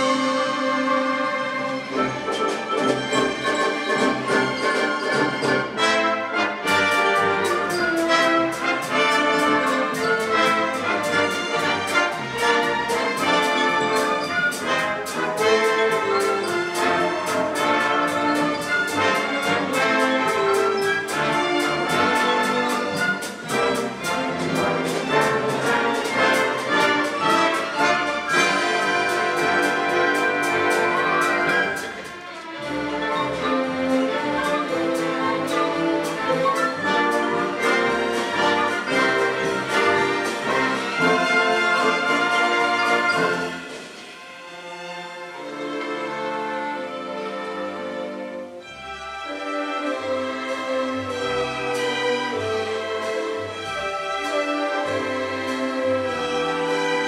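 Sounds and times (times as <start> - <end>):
pops orchestra playing: 0.0 - 57.0
steady rhythmic sharp strokes: 0.0 - 57.0.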